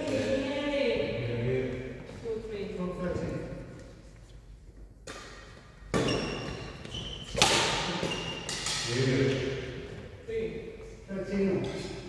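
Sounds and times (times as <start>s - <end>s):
racket hitting shuttlecock: 5.0s - 9.5s
shoe squeaks: 6.0s - 7.4s, 8.0s - 8.6s
man speaking: 8.9s - 9.7s.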